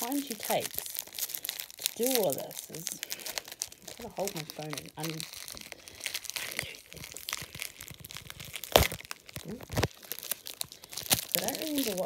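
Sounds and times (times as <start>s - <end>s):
bubble wrap and paper crinkling: 0.0s - 12.0s
sharp crack: 2.9s - 12.0s.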